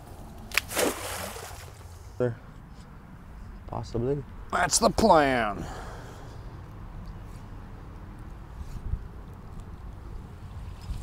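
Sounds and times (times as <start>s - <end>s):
net slapping water: 0.5s - 1.9s
splash of net sinking: 0.5s - 1.9s.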